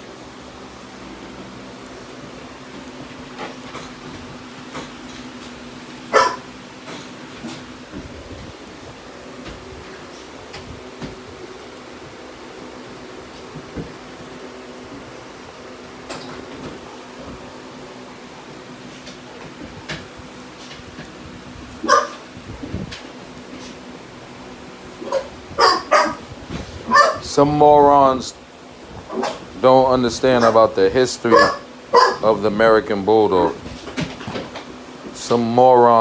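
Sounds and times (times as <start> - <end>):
low mechanical hum: 0.0 - 36.0
dog barking sharply: 6.1 - 6.5, 21.8 - 22.2, 25.0 - 26.2, 26.9 - 27.2, 31.3 - 32.3.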